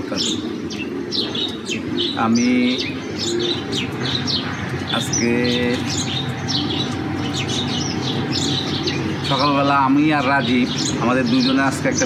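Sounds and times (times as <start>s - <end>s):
small birds chirping: 0.0s - 12.0s
steady low hum: 0.0s - 12.0s.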